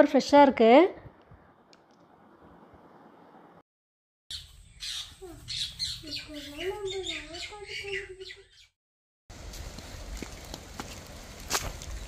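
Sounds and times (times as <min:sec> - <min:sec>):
birds chirping and squawking: 0:04.3 - 0:08.8.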